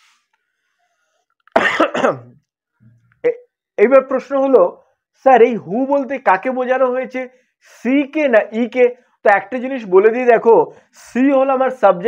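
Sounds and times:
man coughing: 1.5s - 2.4s.

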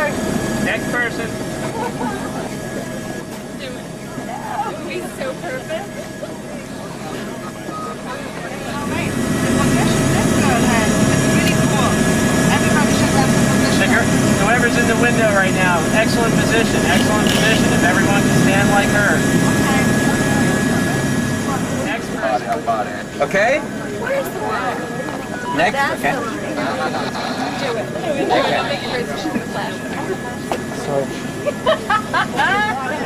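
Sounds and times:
helicopter engine and rotor: 0.0s - 33.0s
people's voices: 0.0s - 33.0s
steady whine: 0.0s - 33.0s.

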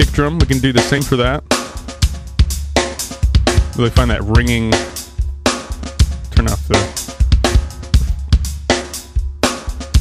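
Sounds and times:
drum kit loop: 0.0s - 10.0s.

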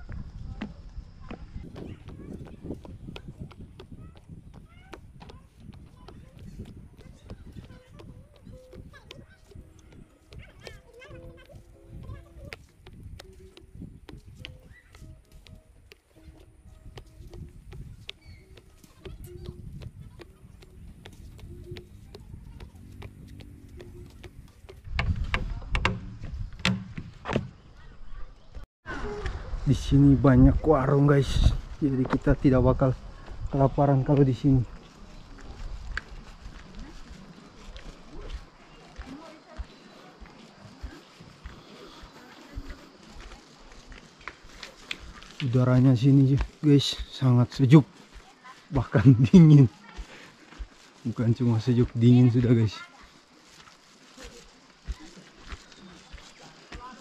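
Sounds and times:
feet thudding on wooden platform: 0.0s - 27.6s
footsteps on wooden planks: 0.0s - 27.8s, 31.2s - 57.0s
planks clicking and knocking: 24.2s - 27.6s.

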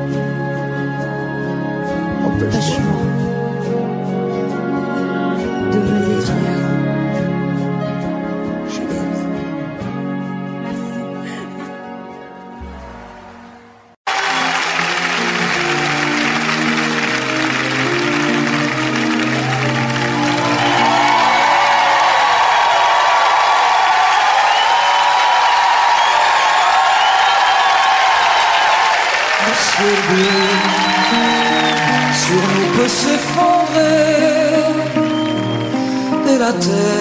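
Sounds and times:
band playing held chords: 14.1s - 36.1s
audience applauding and cheering: 14.1s - 36.6s.

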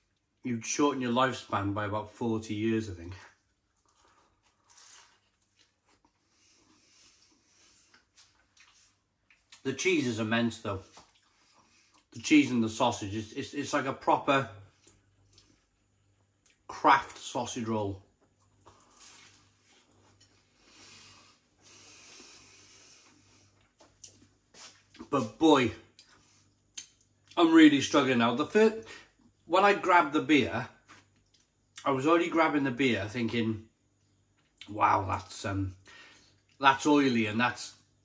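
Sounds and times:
low steady room hum: 0.0s - 38.0s
chewing pastry: 3.1s - 9.7s, 10.8s - 12.2s, 14.7s - 16.7s, 18.2s - 25.3s, 30.8s - 31.8s
crackly rustle: 3.1s - 9.7s, 18.2s - 20.7s
soft breaths through nose: 6.2s - 9.0s, 11.2s - 12.1s, 20.3s - 23.6s.

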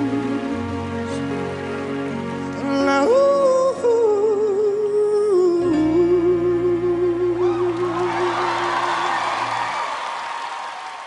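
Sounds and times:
song's held note and bass: 5.4s - 9.4s
audience applauding and cheering: 7.4s - 11.0s.

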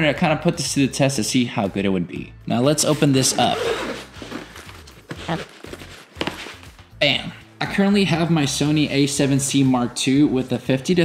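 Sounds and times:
fabric rustling: 3.4s - 6.8s.

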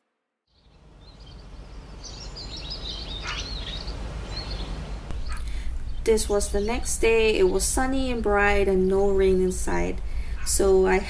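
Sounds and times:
small birds chirping: 0.5s - 11.0s.

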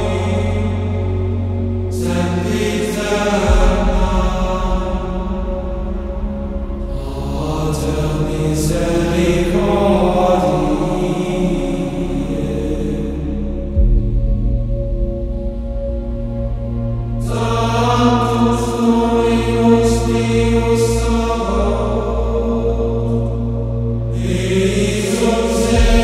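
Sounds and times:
chant-style singing: 0.0s - 14.0s, 17.2s - 26.0s
low sustained drone: 0.0s - 26.0s.

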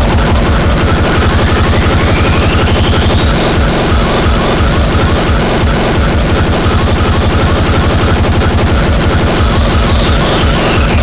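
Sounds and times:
fast distorted kick drum: 0.0s - 11.0s
harsh noise wall: 0.0s - 11.0s
high synth sweep: 0.0s - 11.0s.

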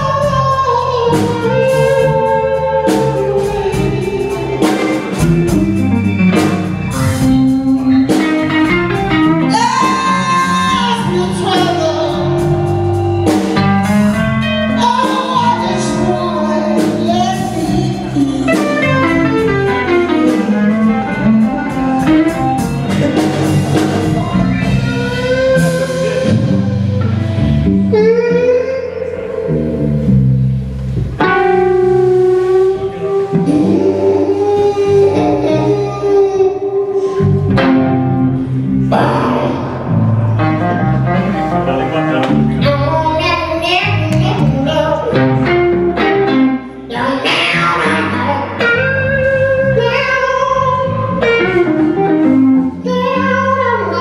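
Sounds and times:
woman singing: 0.0s - 6.2s, 9.4s - 12.7s, 14.4s - 20.4s, 32.8s - 37.4s, 42.6s - 45.5s, 46.9s - 51.5s
blues band playing live: 0.0s - 54.0s
held lead guitar notes: 0.0s - 54.0s
keyboard: 0.0s - 54.0s.

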